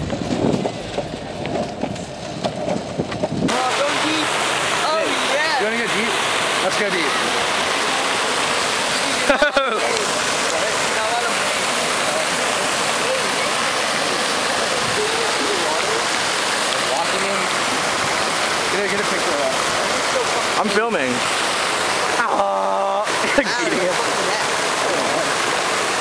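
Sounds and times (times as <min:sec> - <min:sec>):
fountain water splashing: 0:00.0 - 0:26.0
faint voices: 0:03.5 - 0:21.3.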